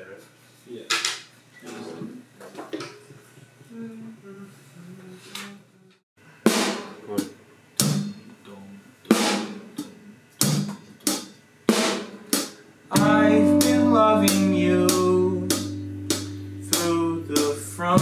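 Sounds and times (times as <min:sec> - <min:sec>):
snare drum hits: 0:06.5 - 0:07.1, 0:09.1 - 0:09.6, 0:11.7 - 0:12.5
held pitched instrument notes: 0:12.9 - 0:18.0
cymbal strikes: 0:13.0 - 0:17.5.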